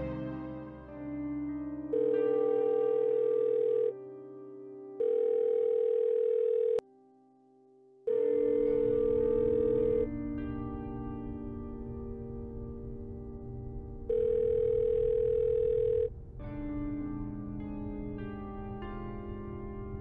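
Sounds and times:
soft background music: 0.0 - 7.4, 8.0 - 20.0
telephone ringing tone: 1.9 - 4.0, 5.0 - 6.8, 8.1 - 10.1, 14.1 - 16.1.

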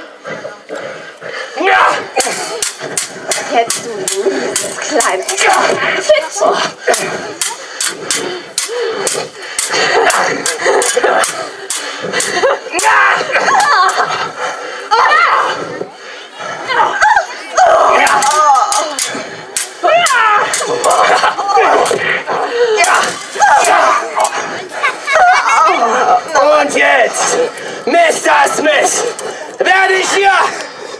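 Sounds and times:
voices shouting: 1.5 - 30.9
swords clashing: 2.2 - 5.8, 6.9 - 14.1, 17.9 - 22.0, 22.8 - 24.4.

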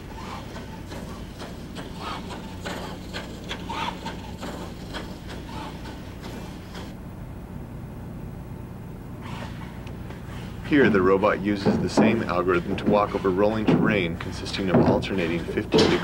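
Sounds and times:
steady low hum: 0.0 - 16.0
robot feet knocking on wood: 11.6 - 16.0.

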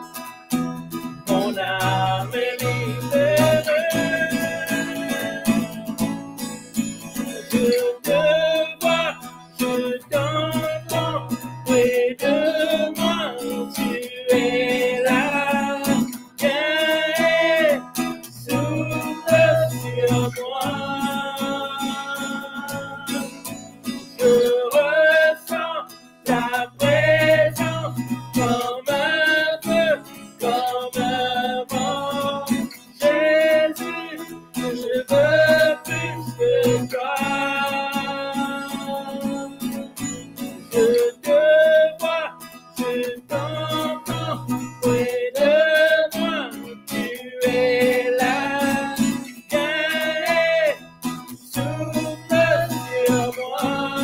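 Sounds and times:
strummed acoustic guitar: 0.0 - 54.0
man and woman singing: 1.3 - 6.0, 7.3 - 23.4, 24.2 - 39.8, 40.6 - 54.0.

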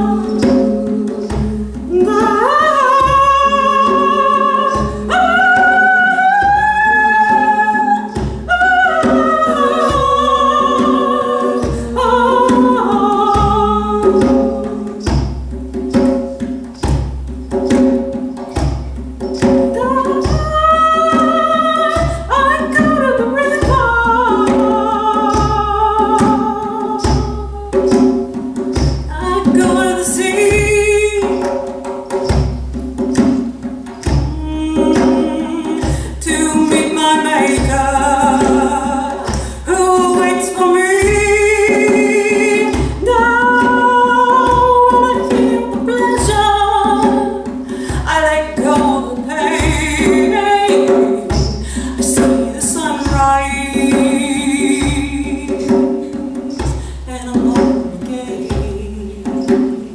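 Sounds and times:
woman singing long notes: 0.0 - 15.2, 19.7 - 28.4, 29.1 - 31.6, 34.2 - 59.6
deep djembe beats: 0.0 - 59.9.

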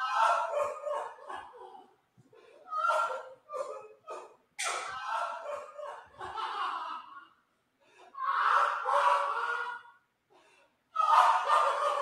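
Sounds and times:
man laughing manically: 5.1 - 7.3.

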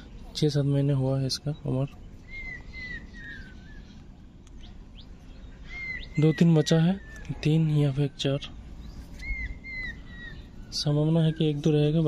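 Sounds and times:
bird calling: 1.3 - 12.0.

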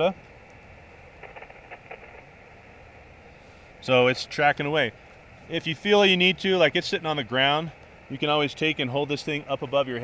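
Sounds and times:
low hiss: 0.0 - 10.0
handling ticks on radio: 1.2 - 2.3.

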